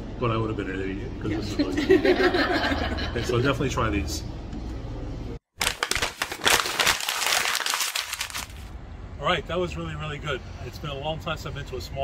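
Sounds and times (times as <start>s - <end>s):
dense crinkling crackling noise: 5.6s - 8.7s.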